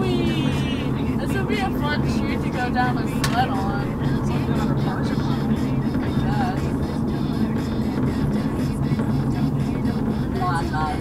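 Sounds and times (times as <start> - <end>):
car engine and road rumble: 0.0 - 11.0
car radio music: 0.0 - 11.0.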